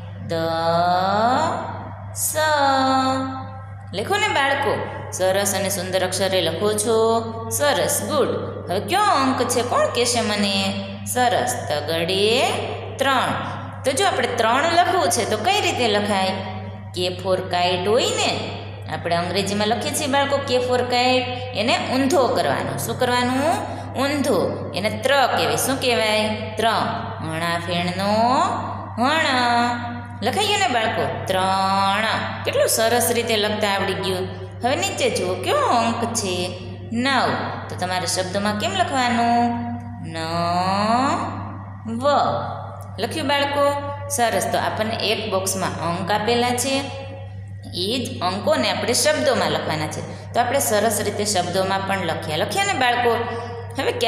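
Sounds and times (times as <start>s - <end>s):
low hum: 0.0s - 54.0s.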